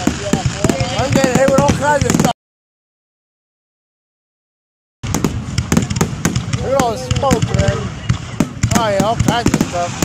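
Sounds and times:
fireworks bangs: 0.0 - 2.4, 5.0 - 10.0.

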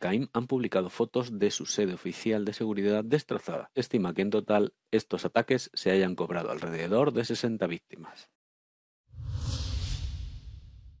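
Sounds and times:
whoosh: 9.1 - 11.0
deep low rumble: 9.2 - 11.0.

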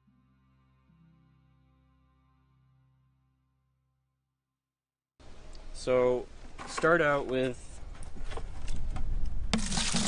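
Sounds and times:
plastic bucket rubbing and knocking: 9.5 - 10.0
water pouring into bucket: 9.5 - 10.0.

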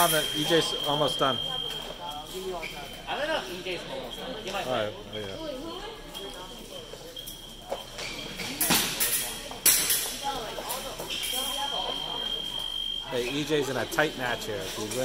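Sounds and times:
background chatter: 0.0 - 15.0
fencing footwork and blade clacks: 7.7 - 11.4.

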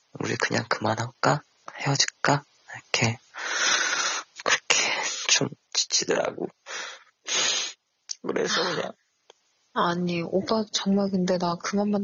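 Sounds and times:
man speaking: 0.2 - 8.9.

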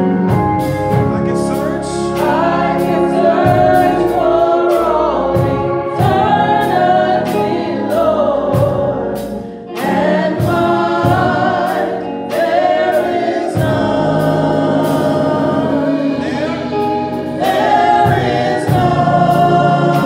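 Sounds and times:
organ chords: 0.0 - 20.0
man singing gospel song: 0.9 - 9.0, 12.3 - 20.0.

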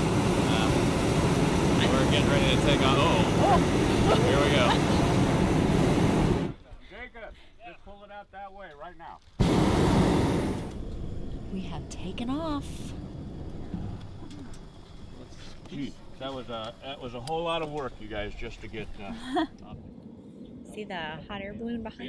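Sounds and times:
propane burner roaring: 0.0 - 6.6, 9.3 - 22.0
voices: 1.7 - 5.2, 11.5 - 13.0, 20.7 - 22.0.

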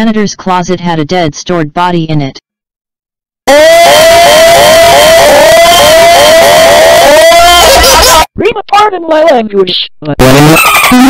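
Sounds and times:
cartoon character laughing: 10.4 - 11.0.

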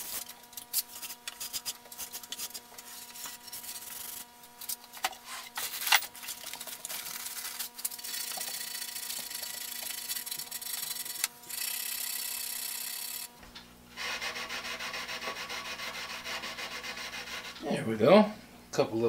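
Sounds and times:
steel wool scrubbing wood: 14.0 - 17.6.

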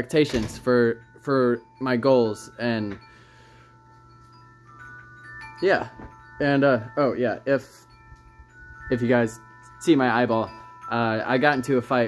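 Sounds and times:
soft ringing chimes: 0.0 - 12.0.

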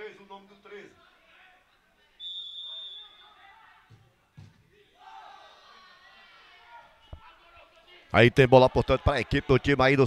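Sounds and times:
referee's whistle blast: 2.2 - 3.3.

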